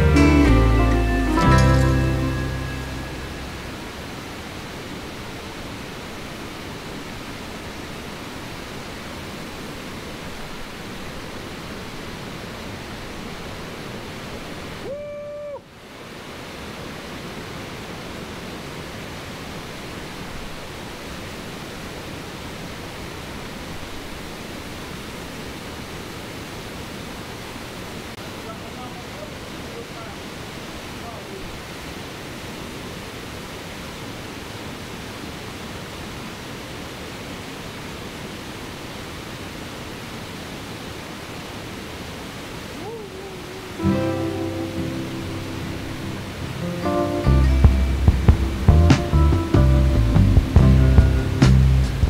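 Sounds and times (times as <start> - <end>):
waterfall rushing: 0.0 - 52.0.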